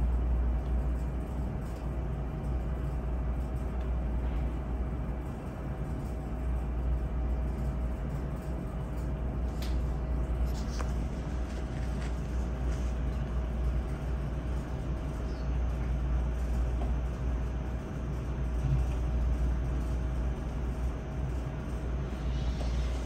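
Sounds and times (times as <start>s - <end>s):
low room rumble: 0.0s - 23.0s.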